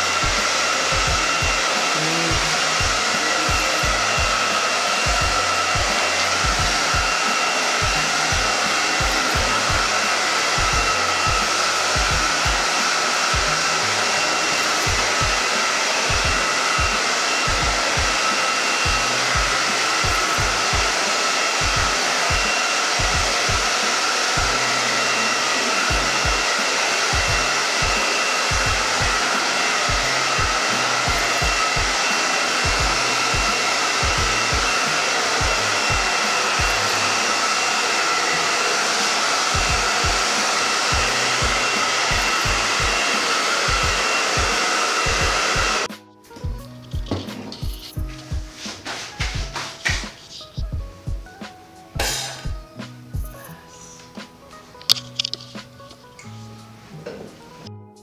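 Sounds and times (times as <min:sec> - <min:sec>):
hair dryer blowing: 0:00.0 - 0:55.3.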